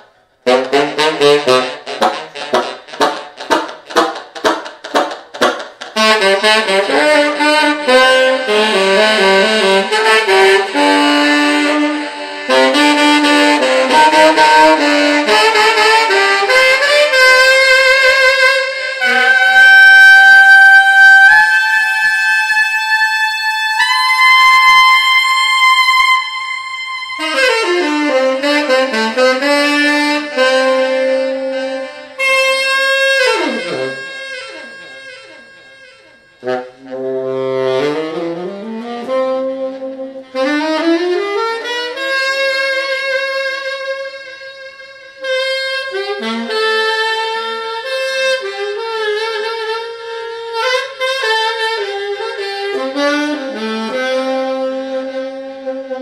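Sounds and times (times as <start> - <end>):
tenor saxophone solo: 0.0 - 56.0.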